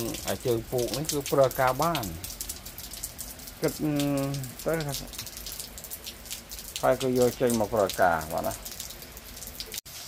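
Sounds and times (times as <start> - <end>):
rain on pavement: 0.0 - 10.0.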